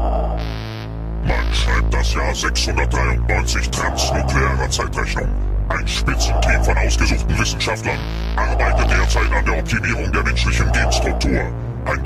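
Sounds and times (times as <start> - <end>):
synthesizer drone: 0.0 - 12.0
processed spoken voice: 1.2 - 12.0.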